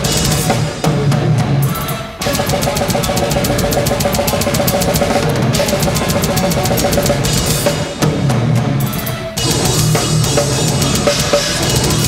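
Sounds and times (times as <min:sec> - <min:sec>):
fast metal drumming: 0:00.0 - 0:12.0
metal band playing: 0:00.0 - 0:12.0.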